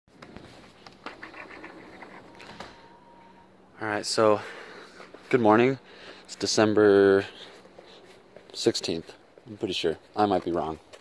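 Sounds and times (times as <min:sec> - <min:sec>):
man speaking: 0:03.7 - 0:04.6, 0:05.2 - 0:07.6, 0:08.5 - 0:10.9.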